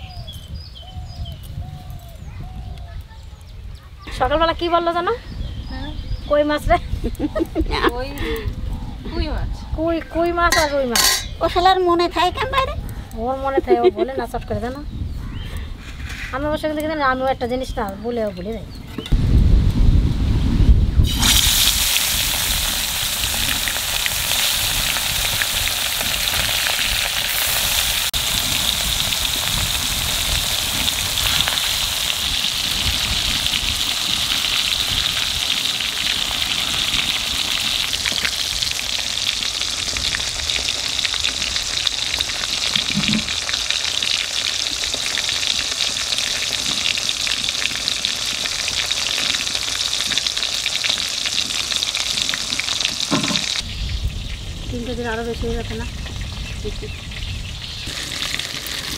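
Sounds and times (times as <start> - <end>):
fish frying in hot oil: 21.0 - 58.9.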